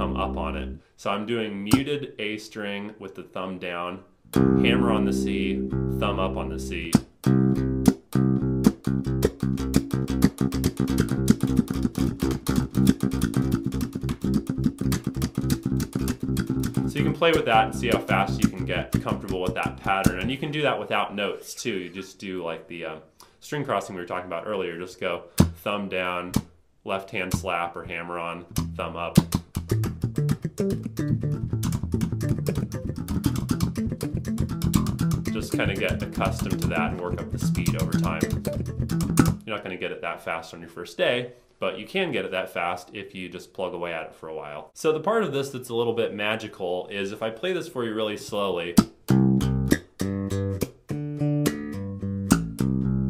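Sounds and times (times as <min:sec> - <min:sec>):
slap bass playing: 0:00.0 - 0:00.8, 0:04.3 - 0:20.7, 0:25.4 - 0:25.6, 0:27.3 - 0:39.6, 0:48.8 - 0:53.0.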